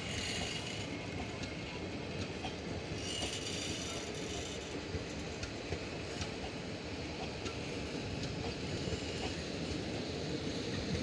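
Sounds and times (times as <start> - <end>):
faint rail clicks: 0.0 - 11.0
train wheels rolling on rails: 0.0 - 11.0.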